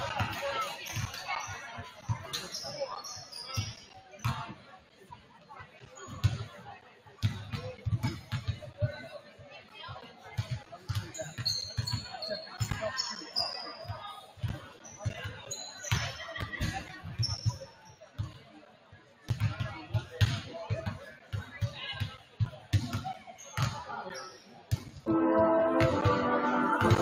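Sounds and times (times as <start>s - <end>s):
sneakers squeaking: 0.0s - 4.4s, 11.0s - 18.3s, 22.9s - 24.8s.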